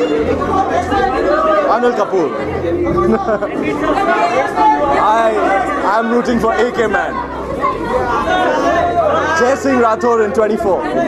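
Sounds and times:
overlapping voices chatter: 0:00.0 - 0:11.0.

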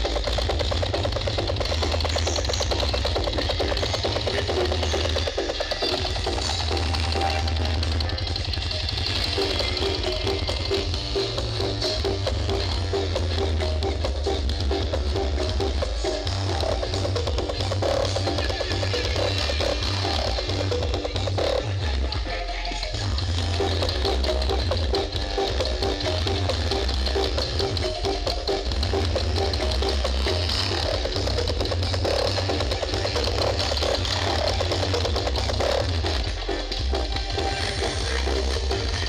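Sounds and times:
loud dance music with heavy bass: 0:00.0 - 0:39.0.

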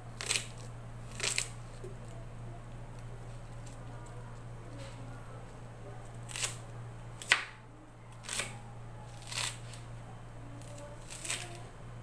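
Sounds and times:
knife chopping onion: 0:06.3 - 0:06.6, 0:07.2 - 0:07.6, 0:08.2 - 0:09.7.

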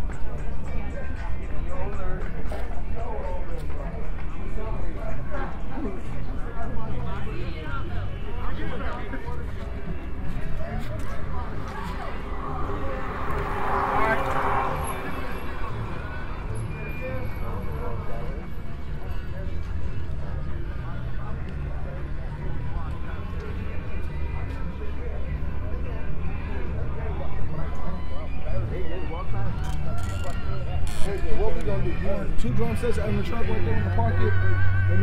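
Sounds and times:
passers-by talking: 0:00.0 - 0:35.0
steady low rumble: 0:09.6 - 0:17.6
loud rushing noise: 0:10.1 - 0:17.6.

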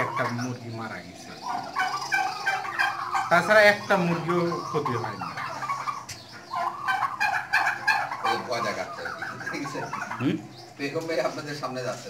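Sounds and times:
turkeys gobbling: 0:00.0 - 0:12.0.

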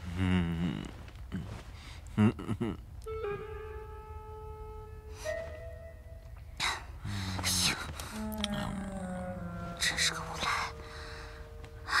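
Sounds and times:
woman breathing: 0:10.8 - 0:12.0.

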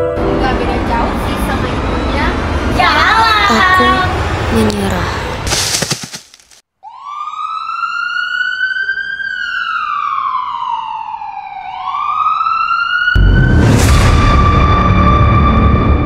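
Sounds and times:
siren wailing: 0:06.8 - 0:16.0
loud boom: 0:13.2 - 0:16.0
music: 0:13.2 - 0:16.0.

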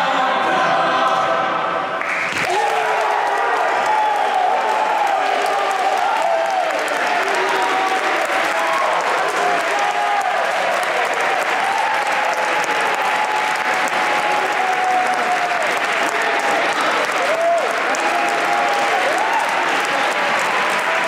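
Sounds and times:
audience applauding: 0:02.0 - 0:21.0.

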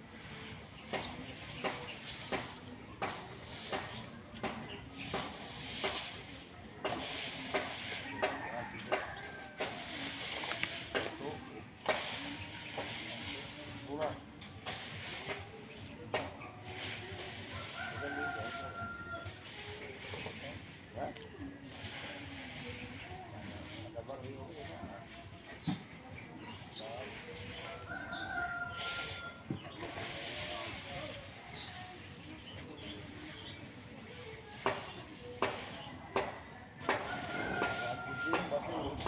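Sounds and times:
rake scraping through rice grain: 0:00.0 - 0:39.0
rooster crowing: 0:37.0 - 0:38.5.

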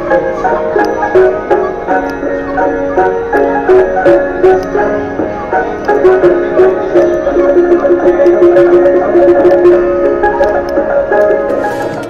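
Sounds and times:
barrel piano playing a tune: 0:00.0 - 0:12.0.

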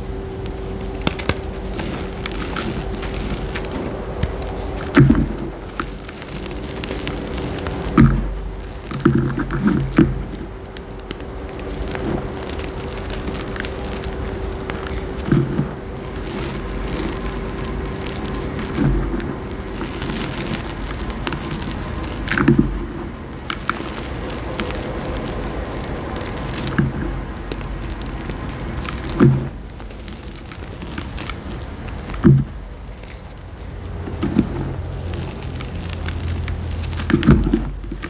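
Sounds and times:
chalk lumps crunching: 0:00.0 - 0:38.0
faint steady hum: 0:00.0 - 0:38.0
powdery rustle of chalk: 0:00.0 - 0:38.0.

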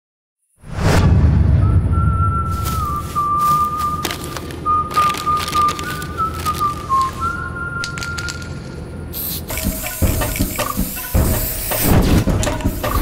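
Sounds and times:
whistled melody: 0:01.5 - 0:08.8.

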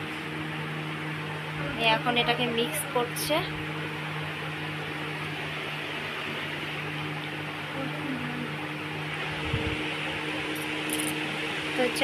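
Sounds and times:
electric fan whirring: 0:00.0 - 0:12.0.

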